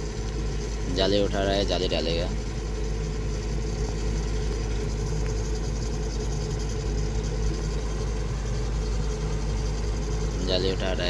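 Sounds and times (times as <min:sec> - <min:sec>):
heavy diesel engine running: 0:00.0 - 0:11.0
winch lifting: 0:00.0 - 0:11.0.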